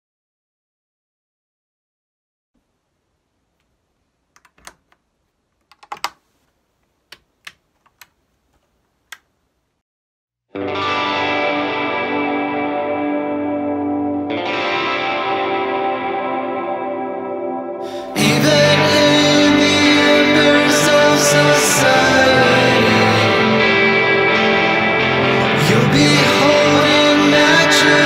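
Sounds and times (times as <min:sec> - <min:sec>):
electric guitar chord ringing: 0:10.6 - 0:28.0.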